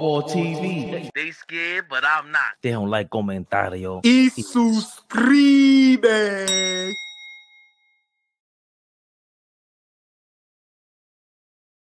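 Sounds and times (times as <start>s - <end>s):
bell-like ding: 6.5s - 8.3s.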